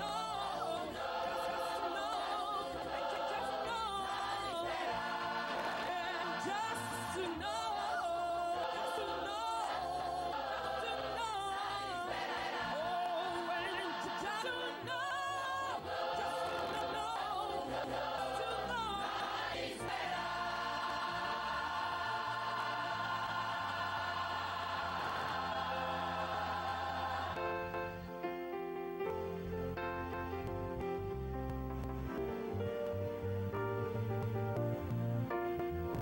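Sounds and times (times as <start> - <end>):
choir singing gospel: 0.0 - 28.2.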